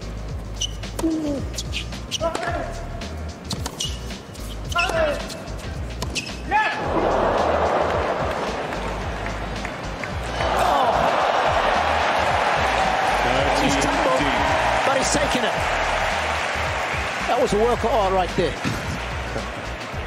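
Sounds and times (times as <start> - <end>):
sneaker squeaks: 0.4 - 2.5, 3.4 - 6.5
racket striking tennis ball: 3.5 - 4.0
crowd cheering: 6.7 - 20.0.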